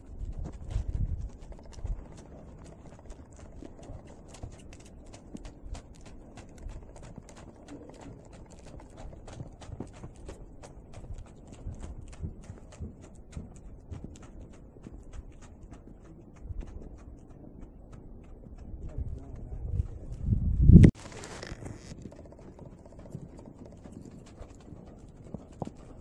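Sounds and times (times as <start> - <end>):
muffled hoofbeats in snow: 0.0 - 26.0.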